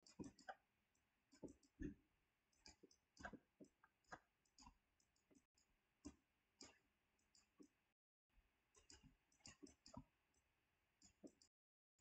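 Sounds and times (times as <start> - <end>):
stylus clicks and taps: 0.0 - 7.8, 8.7 - 11.6.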